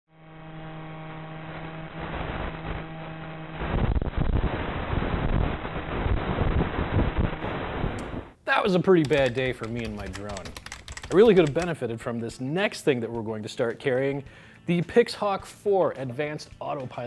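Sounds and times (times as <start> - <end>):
drone motor hum: 0.1 - 8.2.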